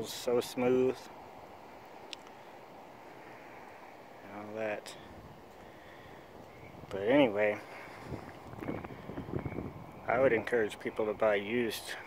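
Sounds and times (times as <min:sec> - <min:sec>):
faint steady ambient hiss: 0:00.0 - 0:12.0.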